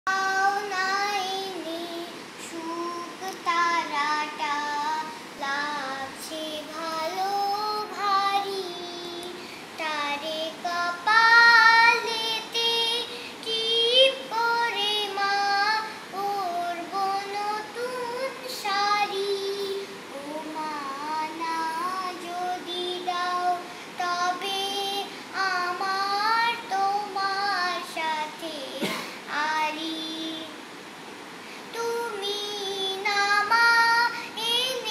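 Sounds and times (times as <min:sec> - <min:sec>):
girl singing unaccompanied: 0:00.1 - 0:34.9.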